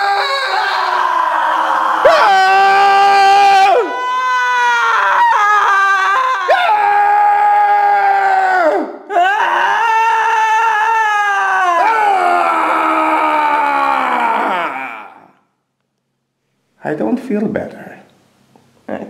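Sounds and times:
man and woman screaming: 0.0 - 15.4.

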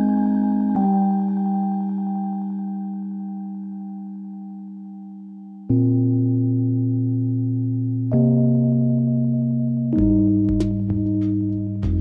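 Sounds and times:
soft keyboard chord: 0.0 - 12.0.

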